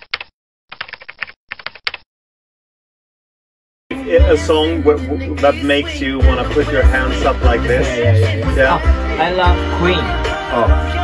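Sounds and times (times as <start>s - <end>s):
keyboard typing: 0.0s - 2.1s.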